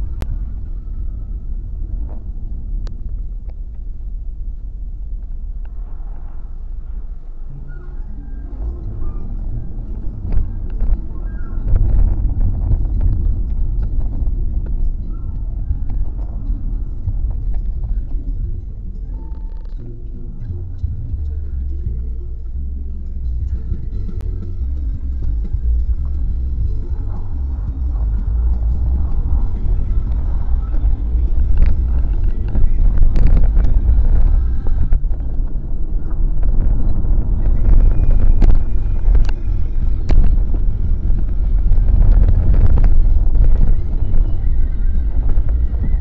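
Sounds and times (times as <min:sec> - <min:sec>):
car rumble from inside cabin: 0:00.0 - 0:46.0.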